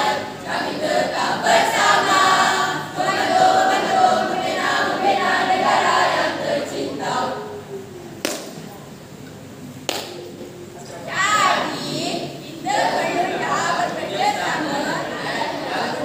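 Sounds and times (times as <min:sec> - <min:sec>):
group of voices singing: 0:00.0 - 0:07.6, 0:11.1 - 0:16.0.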